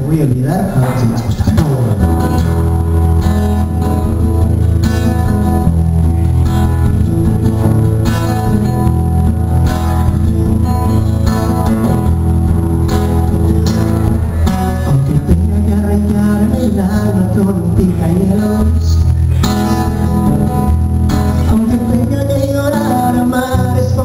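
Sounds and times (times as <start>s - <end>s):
acoustic guitar strumming chords: 0.9s - 24.0s.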